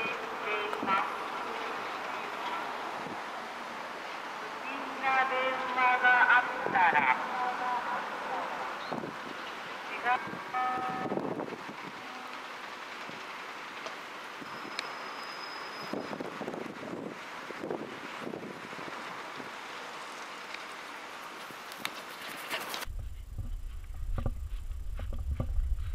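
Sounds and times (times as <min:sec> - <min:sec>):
wind noise on microphone: 0:03.0 - 0:03.3, 0:08.9 - 0:09.4, 0:10.1 - 0:12.0, 0:15.8 - 0:19.6, 0:22.8 - 0:25.9.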